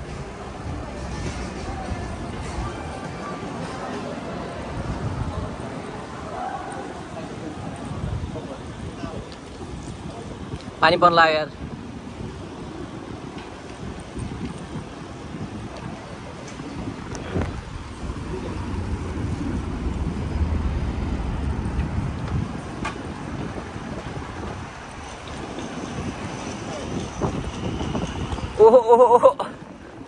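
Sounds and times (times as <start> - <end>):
wind buffeting microphone: 0.0 - 28.8
city traffic: 0.0 - 30.0.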